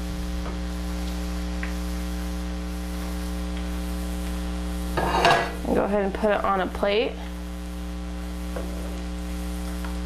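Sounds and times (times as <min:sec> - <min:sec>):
electrical hum: 0:00.0 - 0:10.0.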